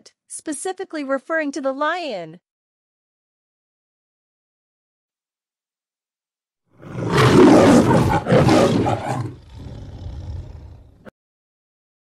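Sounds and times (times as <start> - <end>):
lion roaring: 6.8 - 11.1.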